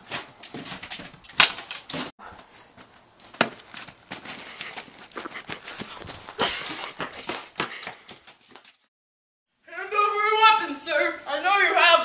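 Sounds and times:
running footsteps on pavement: 2.8 - 8.9.

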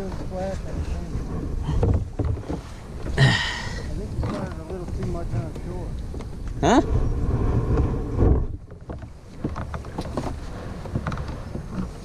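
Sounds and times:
paddle knocking: 0.0 - 12.0
wind rumble on microphone: 0.0 - 12.0.

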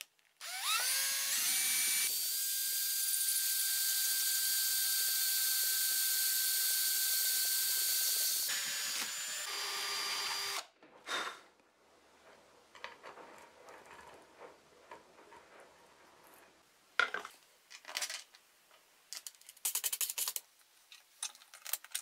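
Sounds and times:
electric drill boring through plastic: 0.4 - 10.7.

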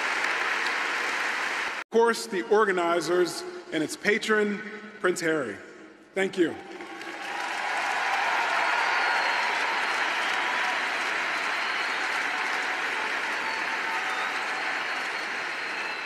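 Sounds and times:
large audience applauding: 0.0 - 1.8, 6.6 - 16.0.

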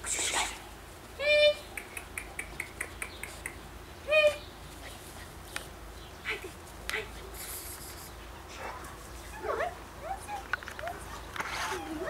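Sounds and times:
puppy whimpering: 9.3 - 12.0.

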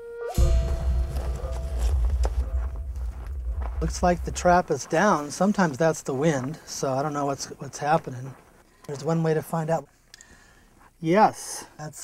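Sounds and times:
wind buffeting microphone: 0.6 - 5.3.

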